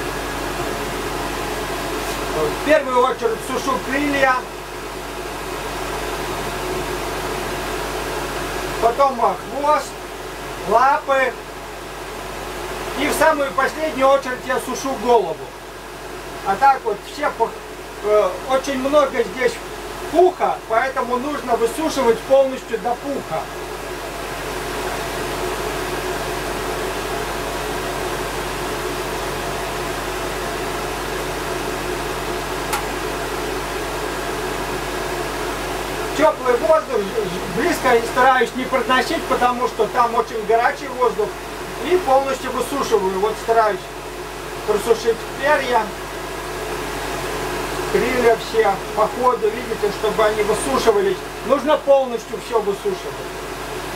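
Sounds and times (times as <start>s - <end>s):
electric hand dryer running: 17.6s - 42.3s.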